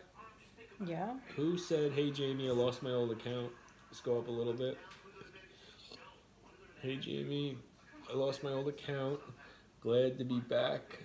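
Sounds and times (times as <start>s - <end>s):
man speaking: 1.3s - 11.0s
faint whispered speech: 4.8s - 7.0s.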